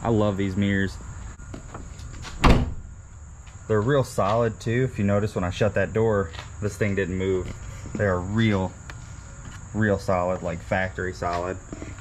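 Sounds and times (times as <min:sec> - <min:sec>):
car door shutting: 0:02.2 - 0:02.8.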